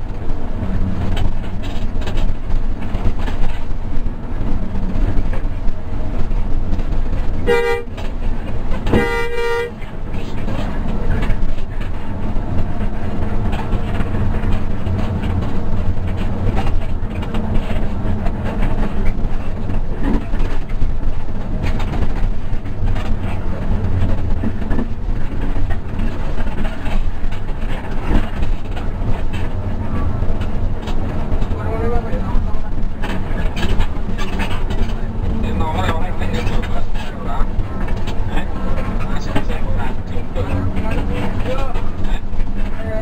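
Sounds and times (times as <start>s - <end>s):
bus engine and road rumble: 0.0s - 43.0s
faint horn toot: 7.4s - 8.0s, 8.9s - 9.8s
bus horn blast: 7.4s - 8.1s, 8.8s - 9.9s.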